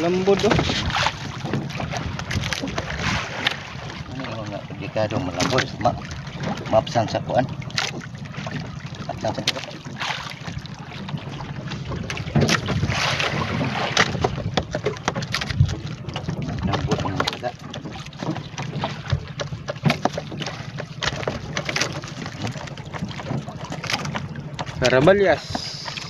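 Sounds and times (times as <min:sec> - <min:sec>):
wind on microphone: 0:00.0 - 0:04.2, 0:10.6 - 0:14.7
water slapping against hull: 0:00.0 - 0:26.0
knocks: 0:17.8 - 0:24.7.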